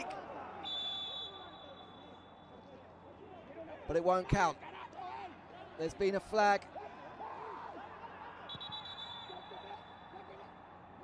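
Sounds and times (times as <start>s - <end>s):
faint stadium background: 0.0s - 11.0s
referee's whistle long blast: 0.6s - 2.4s, 8.5s - 10.1s.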